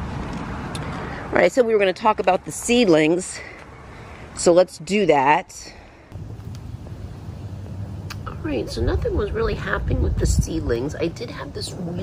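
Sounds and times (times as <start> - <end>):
wind noise on microphone: 6.2 - 12.0.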